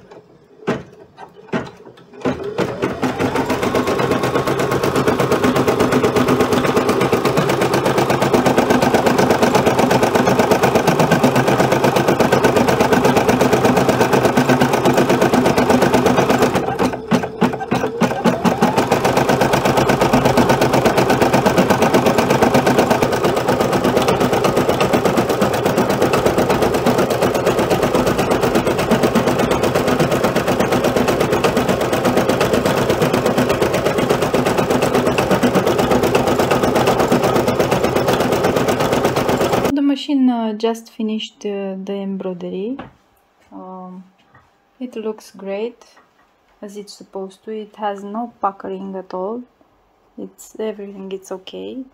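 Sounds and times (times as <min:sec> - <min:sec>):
embroidery machine stitching: 0:00.0 - 0:39.7.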